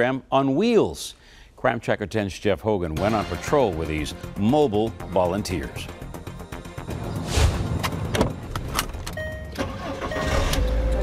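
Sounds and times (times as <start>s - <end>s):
car door latch clicks and thuds: 7.8s - 9.2s
electronic car tone: 9.1s - 11.0s.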